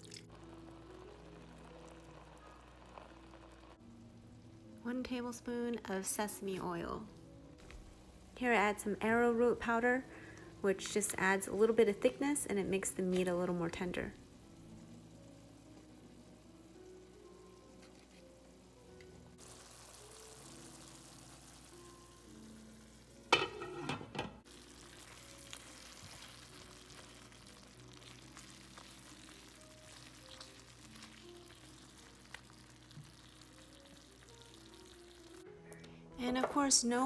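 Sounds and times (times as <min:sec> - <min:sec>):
chicken sizzling in a pan: 0:00.0 - 0:07.0, 0:07.8 - 0:35.4
background music: 0:00.0 - 0:37.0
spatula scraping a pan: 0:23.4 - 0:24.1.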